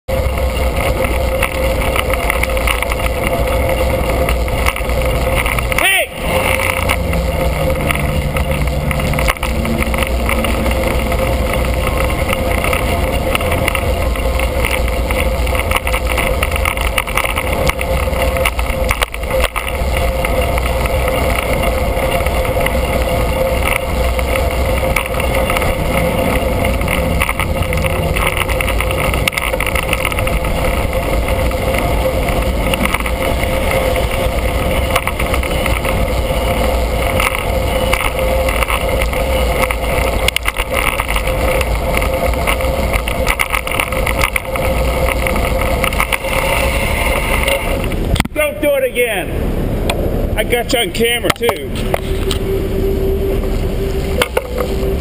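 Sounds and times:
road and traffic noise: 0.0s - 55.0s
wind rumble: 0.1s - 55.0s.

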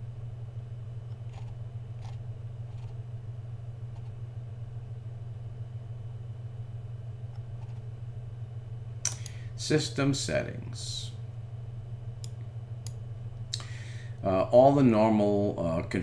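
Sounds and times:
low hum: 0.0s - 16.0s
computer mouse clicks: 1.1s - 3.0s, 7.3s - 7.8s.

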